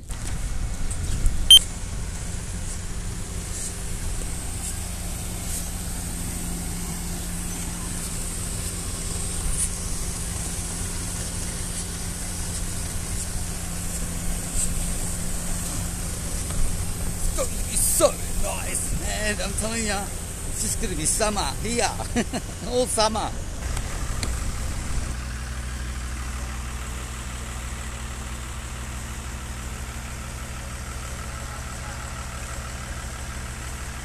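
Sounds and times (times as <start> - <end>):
heavy diesel engine running: 0.0 - 34.0.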